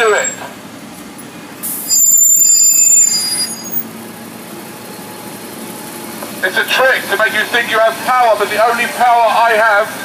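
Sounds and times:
brakes squealing: 0.0 - 10.0
heavy vehicle engine running: 0.0 - 10.0.

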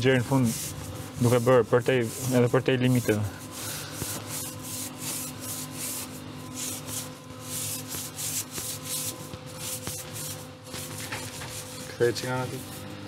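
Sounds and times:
scrubbing by hand on hard surface: 0.0 - 12.9.

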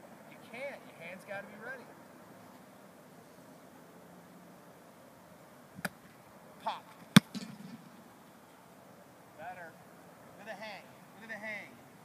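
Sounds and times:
foot kicking football: 6.9 - 8.0.

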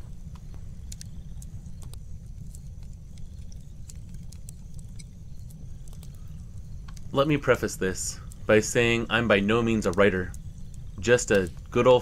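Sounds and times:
fire low rumble: 0.0 - 12.0
wood fire crackling: 0.0 - 12.0.

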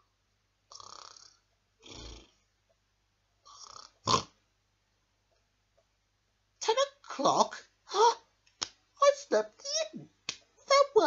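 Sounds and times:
man fake snoring: 0.7 - 2.4, 3.5 - 4.4.

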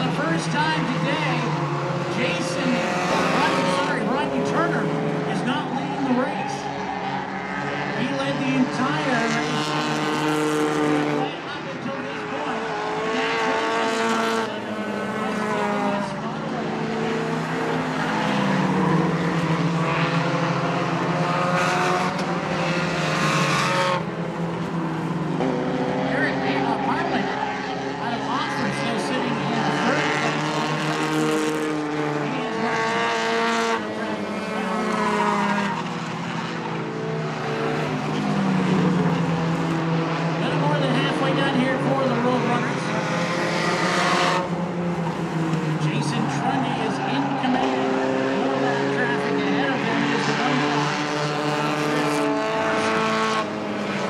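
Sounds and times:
race car engines passing: 0.0 - 54.0.

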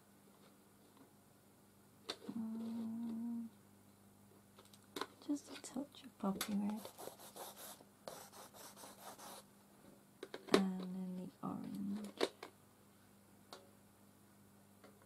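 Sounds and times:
woman humming: 2.2 - 3.6, 10.6 - 12.1
woman speaking: 5.2 - 6.9, 10.6 - 12.2
pencil scratching on paper: 6.8 - 9.4.

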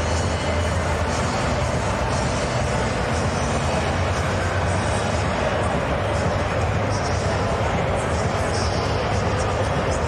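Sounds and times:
crowd din: 0.0 - 10.0
low constant hum: 0.0 - 10.0.

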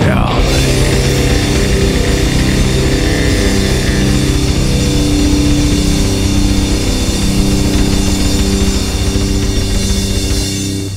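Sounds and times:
distorted guitars and bass: 0.0 - 10.9
rapid metal drumming: 0.0 - 10.9.

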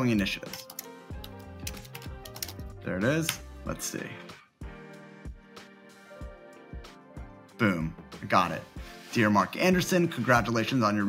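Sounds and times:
background music: 0.0 - 11.0
computer keyboard typing: 0.4 - 2.7.

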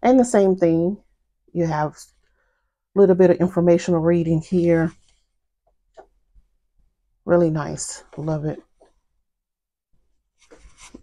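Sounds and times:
paper rustling on desk: 10.4 - 11.0.

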